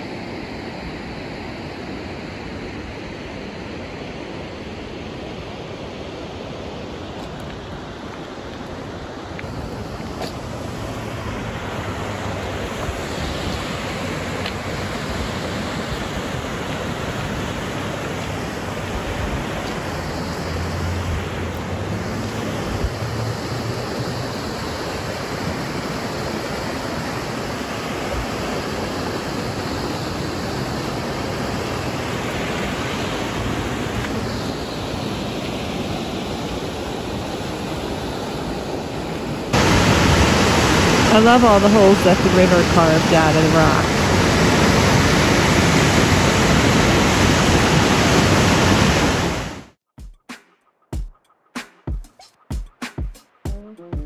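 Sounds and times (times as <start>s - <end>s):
river water rushing over rocks: 6.4s - 49.7s.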